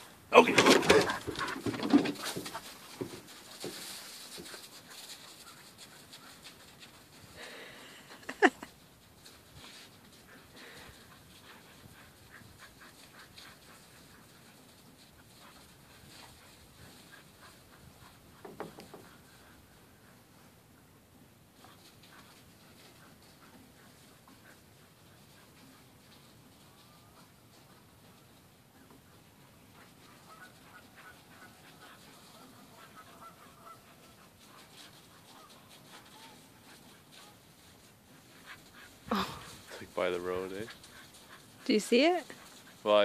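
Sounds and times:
dog vocalising excitedly: 0.3 - 2.7.

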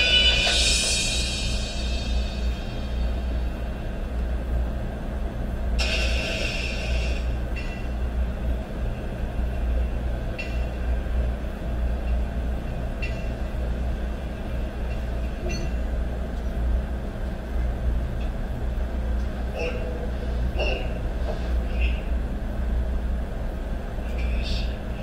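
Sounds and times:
constant hum: 0.0 - 25.0
steady low rumble: 0.0 - 25.0.

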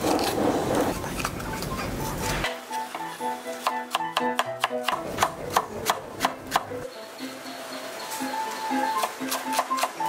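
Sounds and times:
plucked background music: 1.5 - 10.0.

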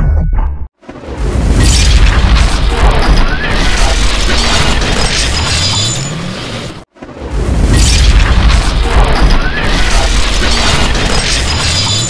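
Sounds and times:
dense rumble with crackle: 7.0 - 11.7.

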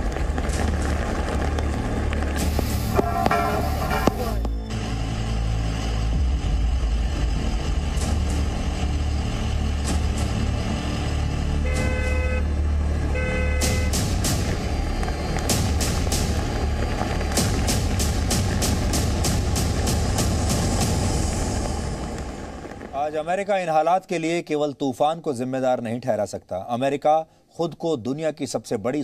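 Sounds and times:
steady low rumble: 0.0 - 23.5
car horn toots: 11.6 - 14.1
music with ticking beat: 13.6 - 21.0.

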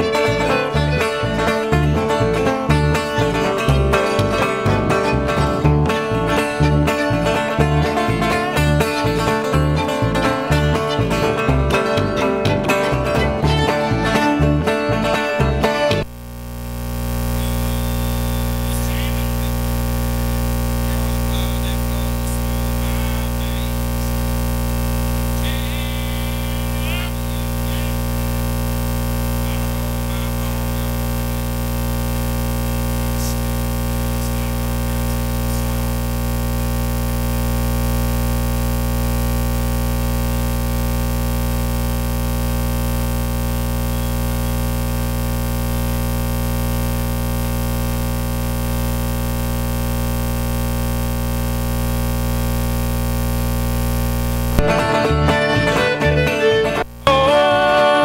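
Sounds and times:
bluegrass band playing: 0.0 - 16.0, 54.6 - 58.0
plucked bass beat: 0.0 - 16.2, 54.2 - 57.8
loud steady hum and hiss: 16.0 - 54.9.

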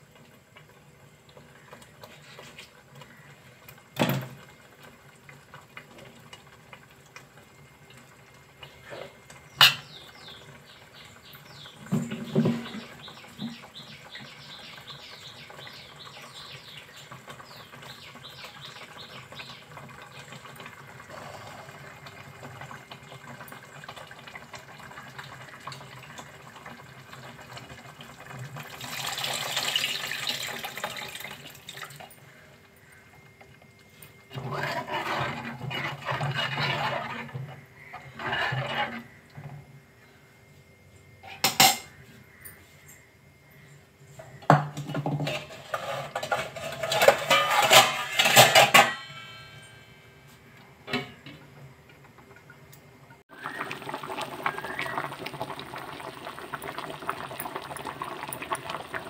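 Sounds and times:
curry simmering in a pot: 0.0 - 33.7, 34.3 - 39.4, 53.3 - 59.0
ladle scraping a pot: 34.3 - 39.2, 45.0 - 49.0.

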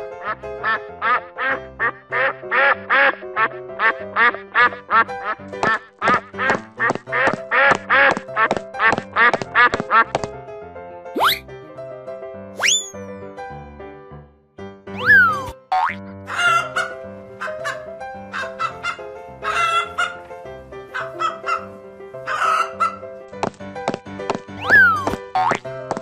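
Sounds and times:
children's background music: 12.5 - 13.1, 14.8 - 26.0
rising whistle-like glides: 12.6 - 13.0
duck quacking rapidly: 17.6 - 20.2, 24.6 - 25.2.

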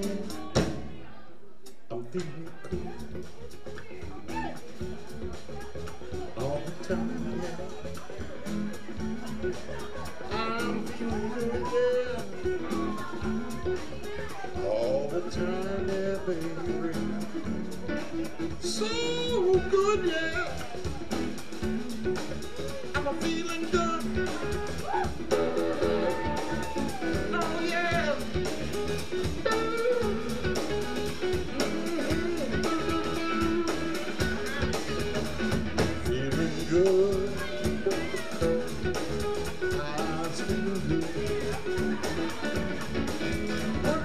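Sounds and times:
bass guitar: 0.0 - 44.0
drums: 0.0 - 44.0
electric guitars: 2.2 - 44.0.

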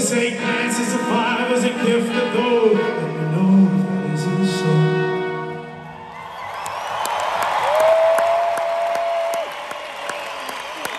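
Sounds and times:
crowd cheering and applauding: 5.8 - 10.9.

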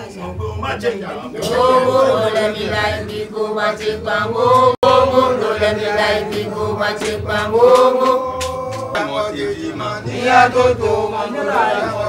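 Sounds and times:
voices singing a chant-like song: 0.0 - 12.0.

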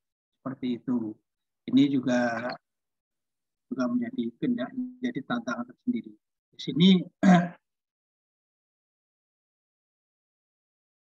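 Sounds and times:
man speaking: 0.5 - 2.7, 3.7 - 7.7.

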